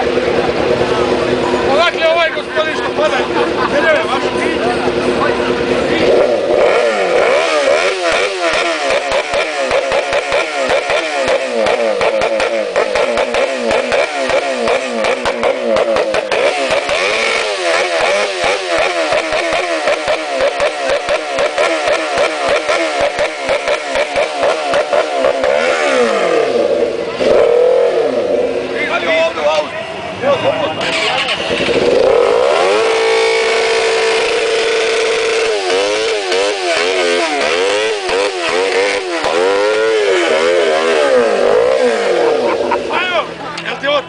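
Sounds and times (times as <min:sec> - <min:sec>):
motorcycle engine revving: 0:00.0 - 0:44.0.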